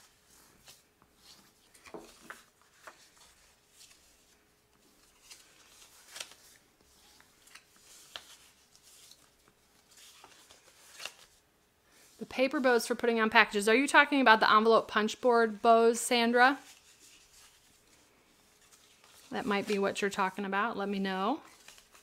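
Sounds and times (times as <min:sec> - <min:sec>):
paper rustling and crinkling: 0:00.0 - 0:11.4, 0:16.5 - 0:20.4, 0:21.4 - 0:22.0.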